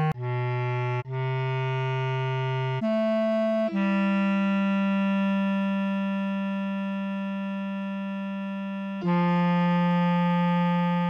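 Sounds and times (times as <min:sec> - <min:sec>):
bass clarinet note: 0:00.0 - 0:11.0.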